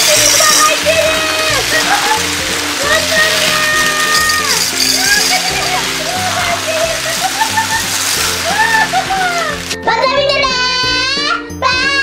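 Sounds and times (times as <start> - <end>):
beads pouring onto tabletop: 0.0 - 9.8
background music: 0.0 - 12.0.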